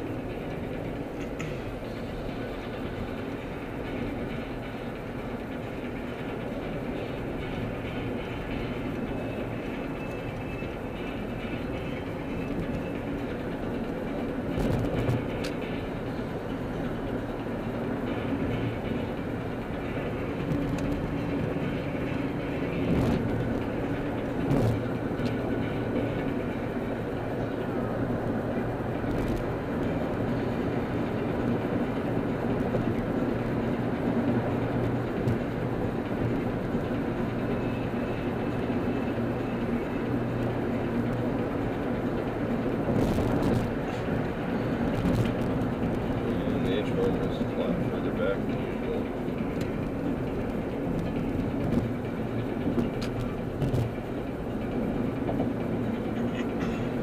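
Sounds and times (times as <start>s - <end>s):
car road and engine drone: 0.0s - 57.0s.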